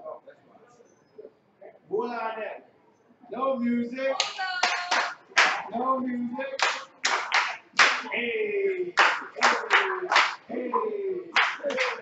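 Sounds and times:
hand claps: 4.2s - 5.7s, 6.6s - 8.1s, 9.0s - 10.5s, 11.4s - 12.0s.

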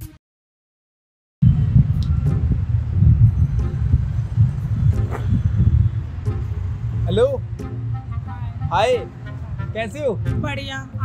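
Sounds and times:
traffic rumble: 1.4s - 11.0s.

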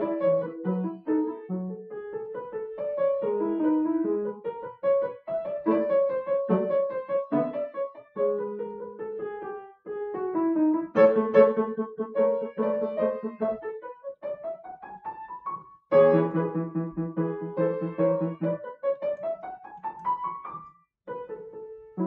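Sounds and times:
grand piano chords and runs: 15.9s - 20.4s.

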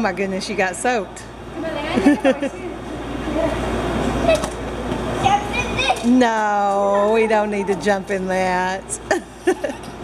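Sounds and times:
children's voices: 1.6s - 8.0s
woman laughing: 1.9s - 2.8s, 9.0s - 10.0s.

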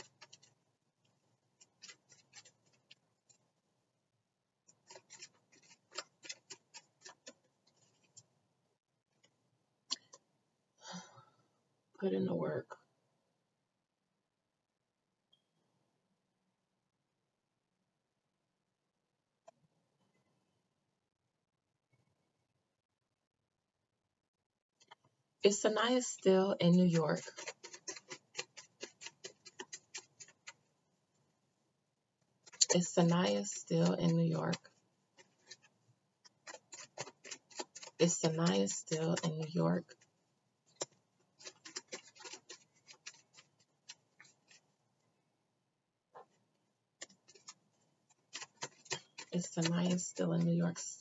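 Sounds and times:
scratchy clicks and rustles: 0.0s - 3.5s, 4.6s - 8.3s, 24.8s - 31.2s, 32.2s - 44.8s, 46.1s - 51.0s
cards being shuffled: 40.7s - 44.6s.

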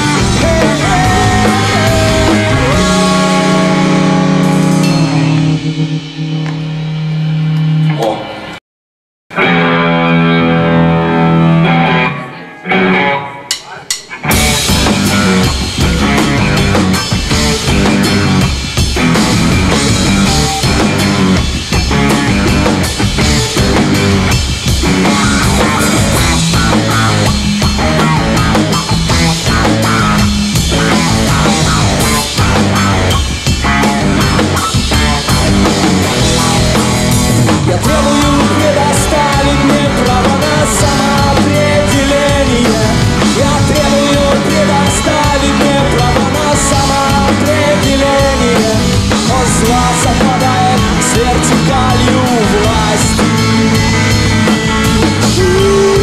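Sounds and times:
punk rock band playing live: 0.0s - 8.4s, 9.3s - 56.0s
bass guitar: 0.0s - 8.6s, 9.3s - 56.0s
electric guitar: 0.0s - 8.6s, 9.3s - 56.0s
drum hits: 13.5s - 56.0s.

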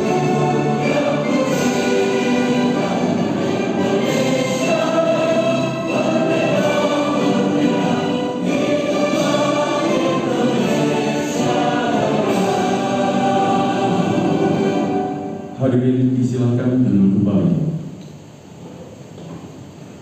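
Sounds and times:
choir singing: 0.0s - 15.6s
instrumental accompaniment: 0.0s - 15.6s.

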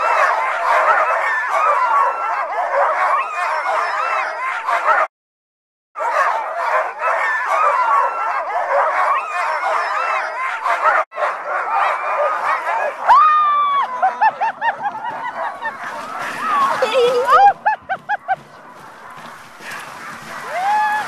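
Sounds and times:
long high dog howl: 0.0s - 5.0s, 6.0s - 14.3s
sled dogs barking and howling: 0.0s - 5.1s, 6.0s - 21.0s.

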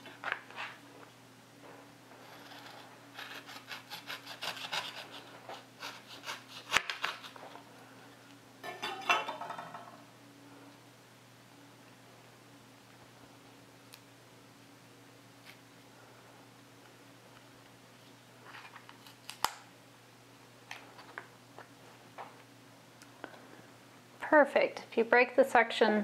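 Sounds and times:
knife sawing through carton: 2.3s - 7.3s.

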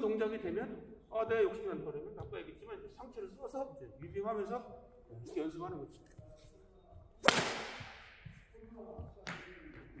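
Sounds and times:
racket hitting shuttlecock: 7.2s - 8.1s.

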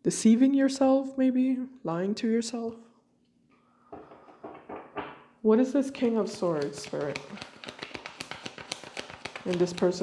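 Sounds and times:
cards being shuffled: 6.3s - 10.0s.

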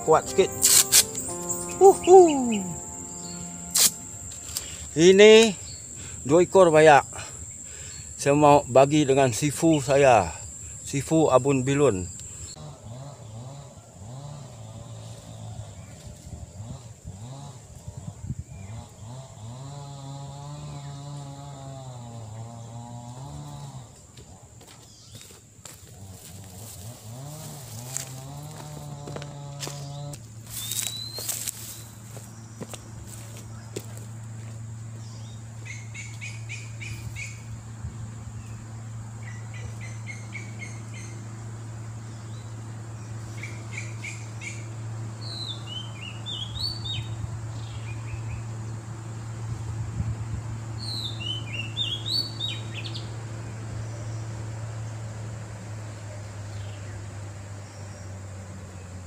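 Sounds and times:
droning hum rising and falling: 0.0s - 7.6s, 26.2s - 50.8s
birds chirping: 0.0s - 13.7s, 26.7s - 49.4s, 50.7s - 55.1s
steady low hum: 0.0s - 25.0s, 25.8s - 58.0s.

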